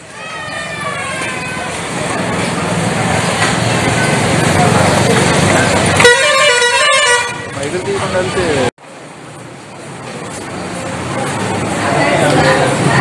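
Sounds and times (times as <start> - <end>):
people chattering: 0.0 - 6.4, 7.2 - 13.0
street noise: 0.0 - 13.0
vehicle horn: 6.0 - 7.7.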